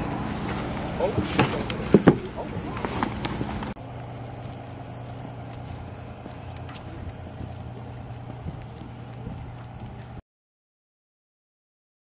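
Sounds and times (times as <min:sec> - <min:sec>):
footsteps on pavement: 0:00.0 - 0:10.2
low vehicle engine hum: 0:00.0 - 0:10.2.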